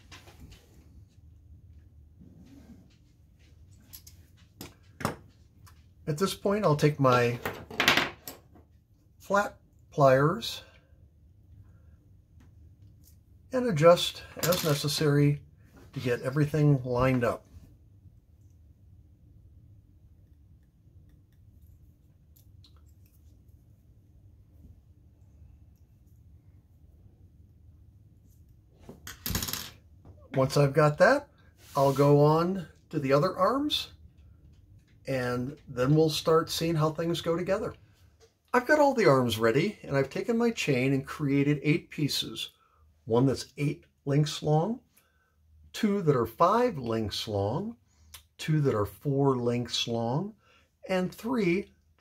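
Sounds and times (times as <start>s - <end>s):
faint room hum: 0.0s - 52.0s.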